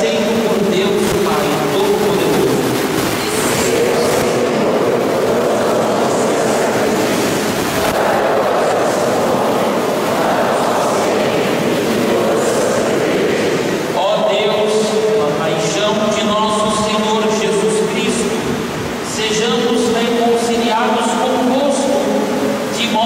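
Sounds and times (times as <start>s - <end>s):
congregation reciting in unison: 0.0s - 23.0s.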